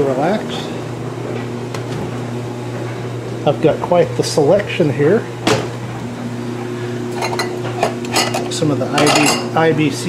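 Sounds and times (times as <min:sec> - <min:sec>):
household appliance hum: 0:00.0 - 0:10.0
refrigerator door click: 0:05.4 - 0:05.8.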